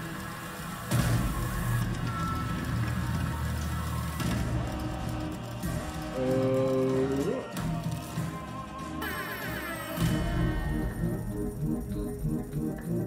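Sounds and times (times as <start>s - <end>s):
steady low drone: 10.3s - 13.0s.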